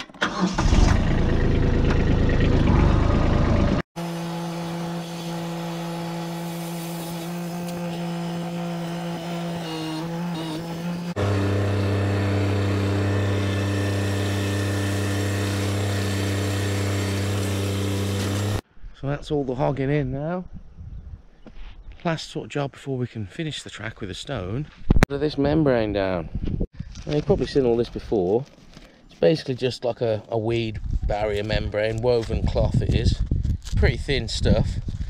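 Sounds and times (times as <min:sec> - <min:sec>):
tractor diesel engine running: 0:00.2 - 0:03.9.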